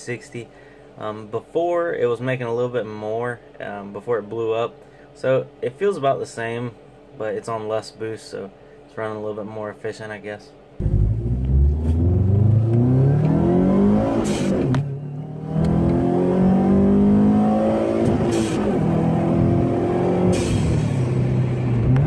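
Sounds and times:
car engine accelerating: 10.8 - 22.0.

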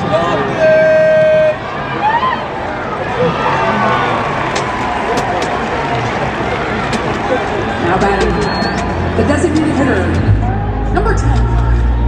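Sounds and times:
stadium crowd chatter: 0.0 - 12.0.

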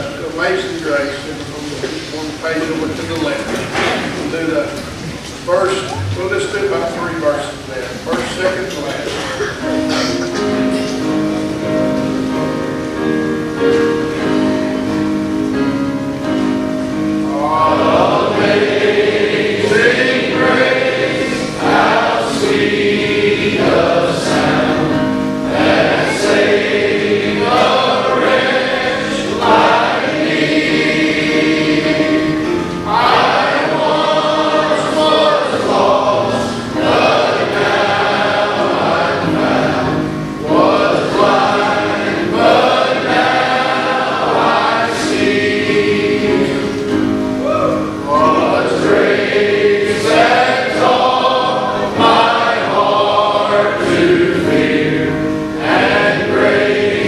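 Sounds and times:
men's choir singing gospel: 0.0 - 57.0
sustained accompaniment: 0.0 - 57.0.

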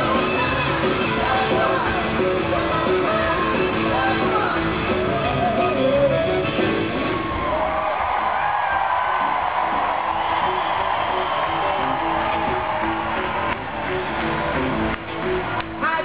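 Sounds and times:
live rock band playing: 0.0 - 16.0
crowd cheering and whooping: 3.3 - 15.8.

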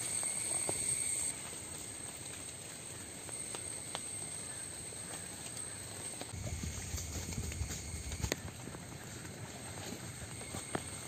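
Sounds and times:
water dripping onto leaves: 1.3 - 8.8
low rumble: 6.3 - 8.4.

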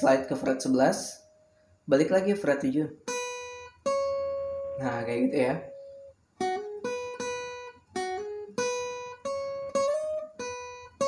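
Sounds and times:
acoustic guitar plucked melody: 0.0 - 11.0.

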